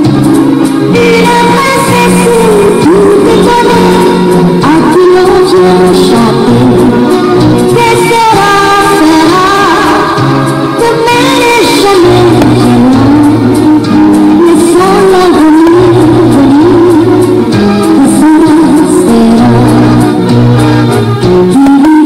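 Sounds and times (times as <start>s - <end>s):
person singing: 0.0s - 20.4s, 21.4s - 22.0s
instrumental backing: 0.0s - 22.0s.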